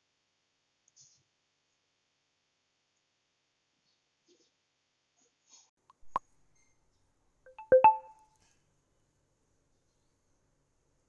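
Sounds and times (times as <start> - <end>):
bell-like chime: 7.5 - 8.1.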